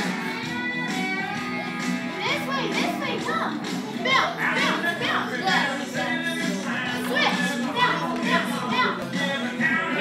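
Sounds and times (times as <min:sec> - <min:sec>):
children chattering and calling: 0:00.0 - 0:10.0
recorded music: 0:00.0 - 0:10.0.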